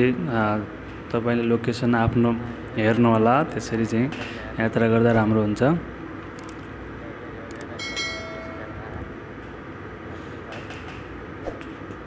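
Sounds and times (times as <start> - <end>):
bright ringing chime: 7.8 - 8.9.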